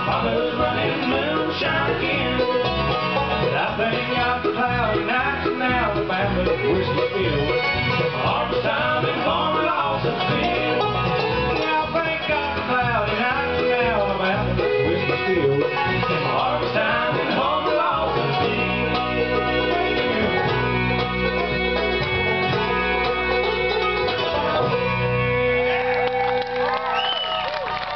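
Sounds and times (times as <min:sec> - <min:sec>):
people singing: 0:00.0 - 0:06.9, 0:08.0 - 0:23.0
bluegrass band playing: 0:00.0 - 0:27.9.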